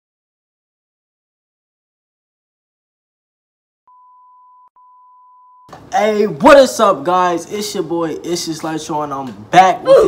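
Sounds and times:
high test tone beep: 0:03.9 - 0:05.7
man talking: 0:05.9 - 0:10.0.

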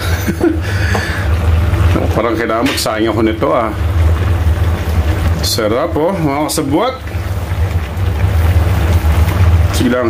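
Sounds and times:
stew boiling hard: 0:00.0 - 0:10.0.

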